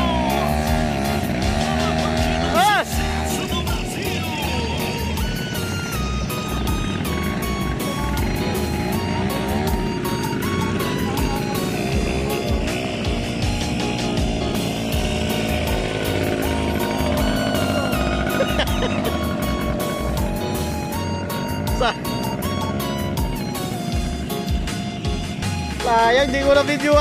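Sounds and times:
background music with steady beat: 0.0 - 27.0
quad bike engines revving: 0.0 - 27.0.

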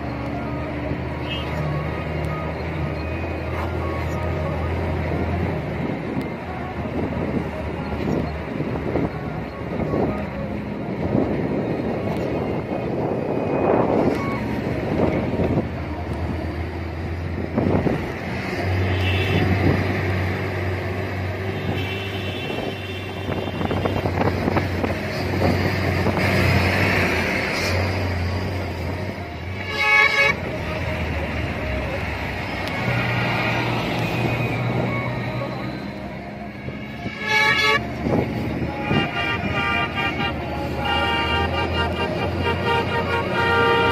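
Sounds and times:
truck horns: 0.0 - 10.1, 12.4 - 43.9
truck engines droning: 0.0 - 43.9.

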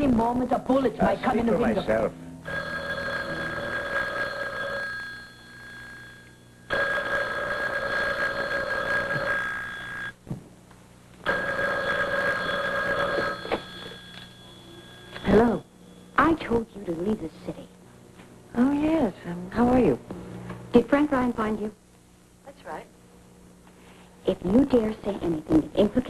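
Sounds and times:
telephone ringing: 2.4 - 10.2, 11.2 - 16.6.

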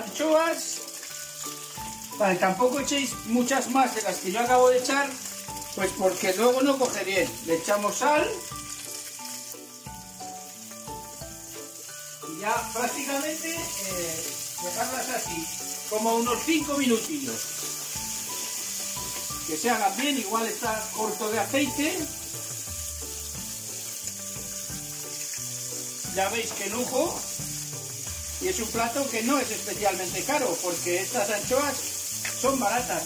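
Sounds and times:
fish sizzling in oil: 0.0 - 33.0
soft background music: 0.0 - 33.0.

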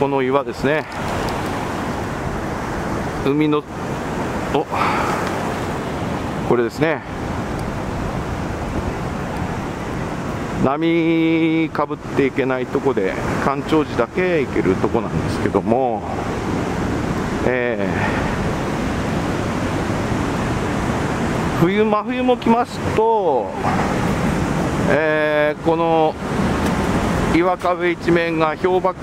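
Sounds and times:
surf breaking on rocky shore: 0.0 - 29.0
wind buffeting microphone: 0.0 - 29.0.

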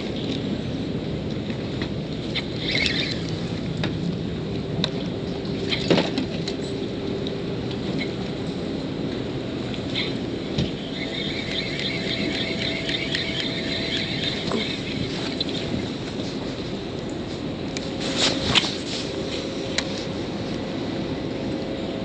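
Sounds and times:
rushing water: 0.0 - 19.6
wind: 0.0 - 22.0
faint high whine: 9.3 - 16.8.

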